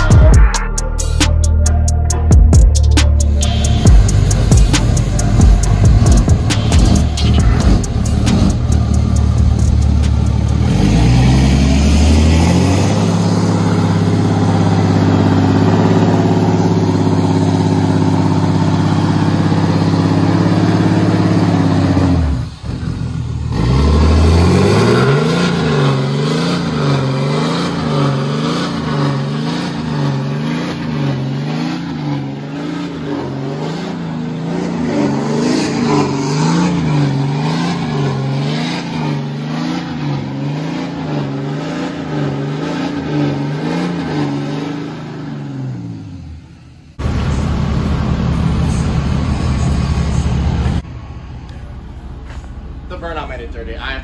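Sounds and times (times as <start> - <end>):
pickup engine revving: 0.0 - 54.0.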